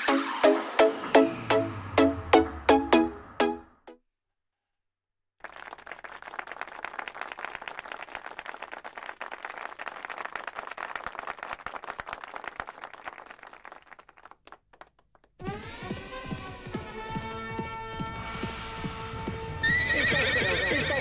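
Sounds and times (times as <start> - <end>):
audience applauding: 5.4 - 15.7.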